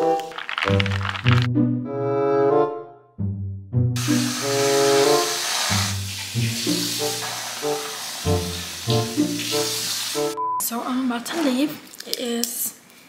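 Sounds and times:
background music: 0.0 - 10.7
aerosol whipped cream spraying: 4.0 - 10.4.

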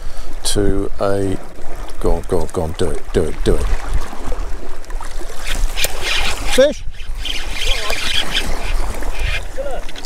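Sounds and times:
moving sea water: 0.0 - 10.0
wind rumbling on microphone: 0.0 - 10.0.

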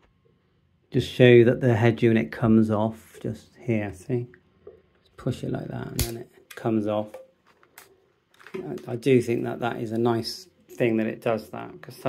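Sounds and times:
man speaking: 0.9 - 4.4, 5.2 - 7.2, 8.5 - 12.0
plastic clicks: 6.0 - 9.0.

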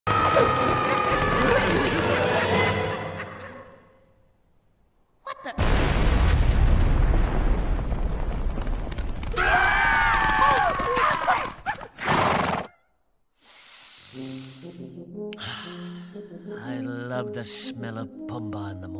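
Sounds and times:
soft music: 14.1 - 18.9.

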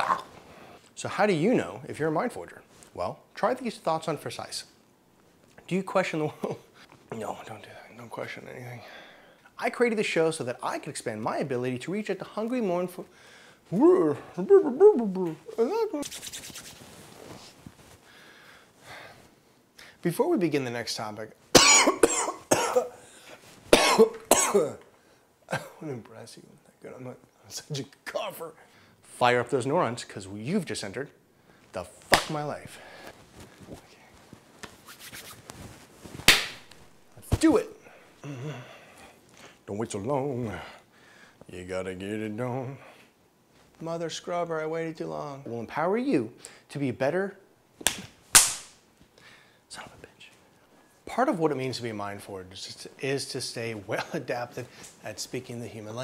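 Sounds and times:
man coughing: 21.6 - 23.0, 23.7 - 24.8, 25.5 - 25.9
loud sharp crack: 32.1 - 32.4, 36.3 - 36.7, 47.8 - 48.8.

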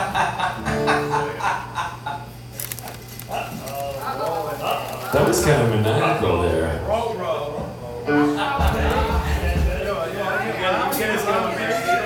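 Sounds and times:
man cackling into microphone: 0.0 - 2.3
low amplifier hum: 0.0 - 10.2.

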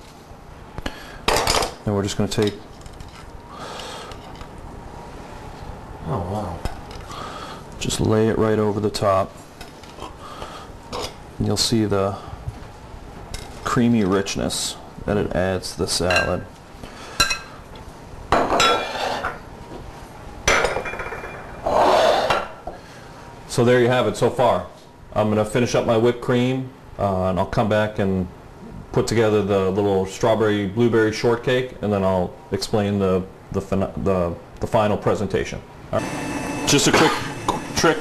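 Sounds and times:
room tone hiss: 0.0 - 38.0
dishes clattering on countertop: 18.3 - 19.4, 20.5 - 21.6.

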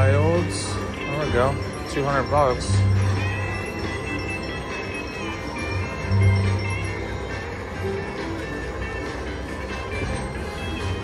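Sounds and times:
slot machine bonus music: 0.0 - 11.0
slot machine reels spinning: 0.0 - 11.0.

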